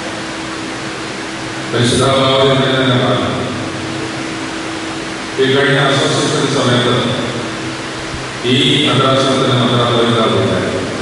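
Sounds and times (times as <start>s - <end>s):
background room hiss: 0.0s - 11.0s
faint steady hum: 0.0s - 11.0s
man's voice: 1.8s - 3.4s, 5.4s - 7.2s, 8.4s - 10.8s.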